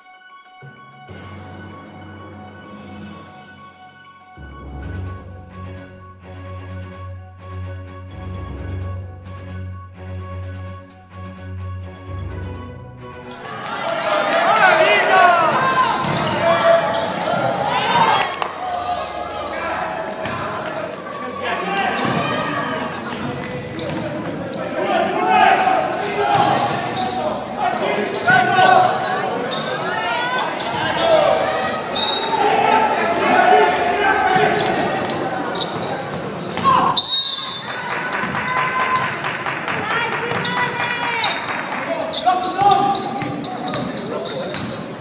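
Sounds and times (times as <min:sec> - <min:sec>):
voices calling out: 0:13.4 - 0:45.0
basketball bouncing on court: 0:15.8 - 0:16.4, 0:34.3 - 0:39.1, 0:40.2 - 0:41.3, 0:41.9 - 0:45.0.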